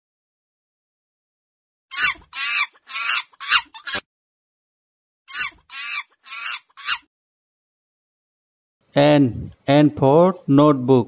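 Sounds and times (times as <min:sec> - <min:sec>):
monkey chattering calls: 0:01.9 - 0:04.0, 0:05.3 - 0:07.1.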